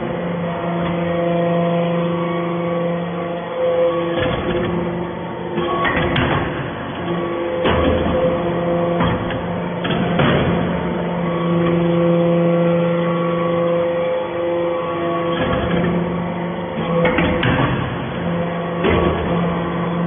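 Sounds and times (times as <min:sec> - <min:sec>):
hydraulic pump humming: 0:00.0 - 0:20.0.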